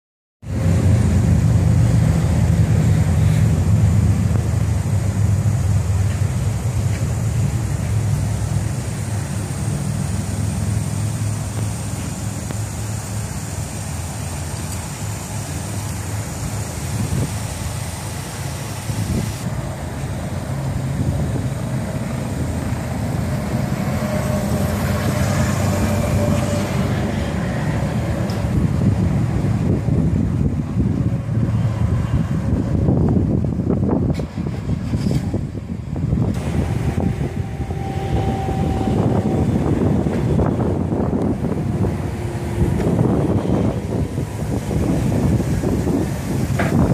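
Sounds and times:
motorcycle engine idling and riding: 0:00.4 - 0:36.6
wind buffeting microphone: 0:00.5 - 0:46.9.

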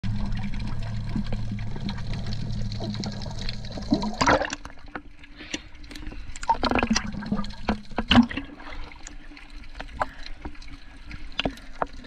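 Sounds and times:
crackling clicks of moving water: 0:00.0 - 0:12.0
steady low underwater hum: 0:00.0 - 0:12.0.

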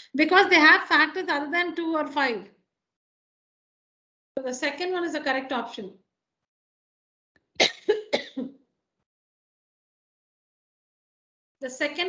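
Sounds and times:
person clearing throat: 0:07.6 - 0:08.5.

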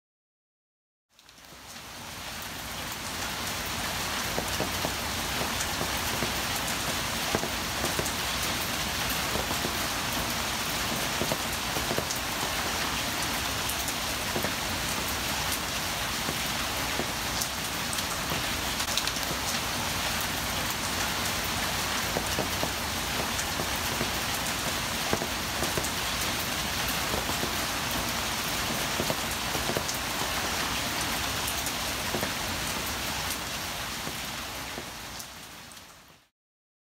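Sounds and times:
water dripping off an awning: 0:01.1 - 0:36.0
steady rain falling: 0:01.1 - 0:36.3.

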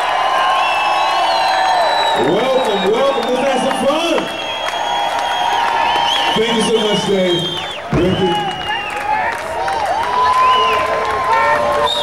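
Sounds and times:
audience cheering and whooping: 0:00.0 - 0:12.0.

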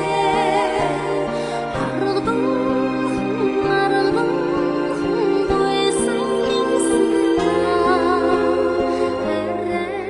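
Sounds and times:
instrumental backing: 0:00.0 - 0:10.0
woman singing into a microphone: 0:00.0 - 0:10.0.

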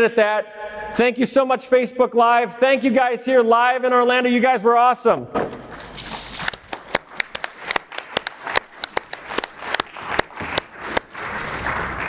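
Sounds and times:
small audience applauding: 0:05.5 - 0:12.0.

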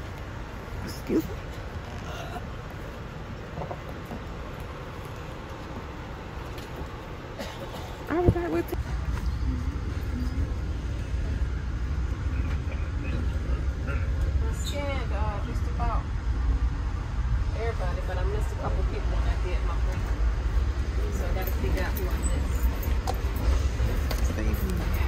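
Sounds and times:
train carriage rumble: 0:00.0 - 0:25.0.

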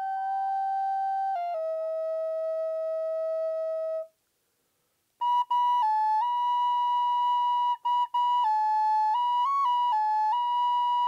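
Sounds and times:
flute playing: 0:00.0 - 0:04.2, 0:05.2 - 0:11.0.

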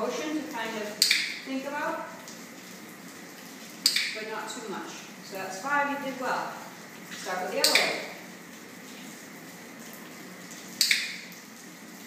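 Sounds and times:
low room hum: 0:00.0 - 0:12.0
dog-training clicker click: 0:01.0 - 0:01.3, 0:03.8 - 0:04.2.

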